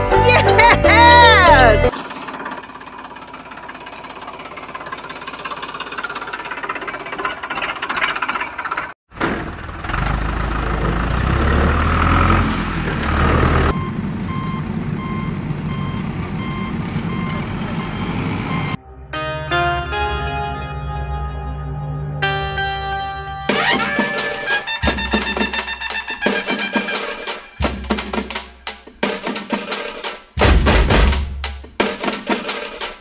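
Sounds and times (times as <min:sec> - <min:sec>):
vehicle engine rumble: 0:01.0 - 0:18.8
reversing alarm beeping: 0:13.7 - 0:18.8.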